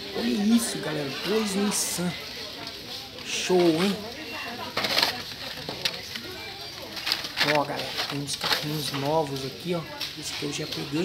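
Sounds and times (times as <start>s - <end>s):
faint voices: 0.0s - 11.0s
plastic blister packs clicking and rustling: 2.6s - 11.0s.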